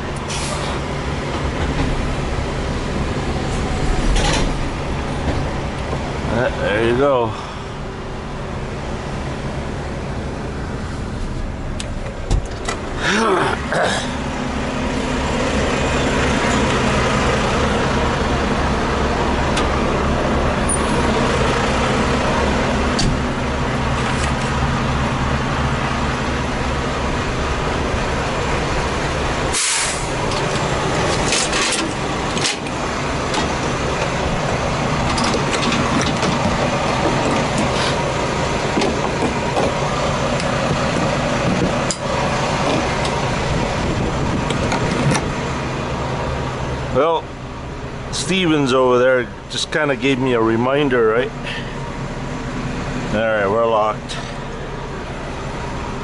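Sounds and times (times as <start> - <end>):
diesel engine idling: 0.0 - 56.0
compressed air hisses: 29.5 - 30.1.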